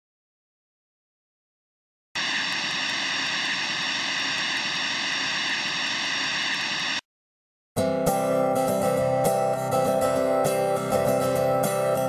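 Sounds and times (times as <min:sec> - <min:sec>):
film projector whirring and ticking: 0:02.2 - 0:07.0.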